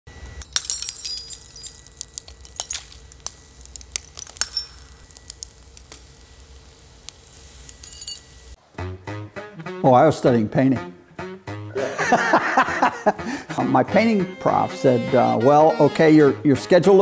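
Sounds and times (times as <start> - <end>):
falling glass shards clinking: 0.4 - 6.0, 7.6 - 8.5
glasses shattering: 0.4 - 6.0, 7.6 - 8.6.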